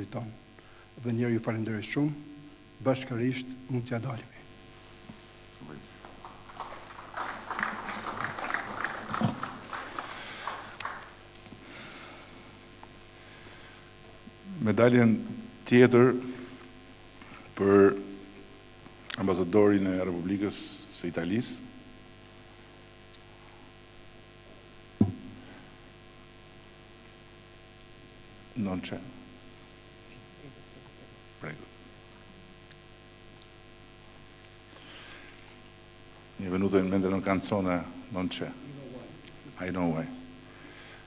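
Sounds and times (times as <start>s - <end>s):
electrical mains hum: 0.0s - 41.0s
audience applauding: 5.9s - 11.2s.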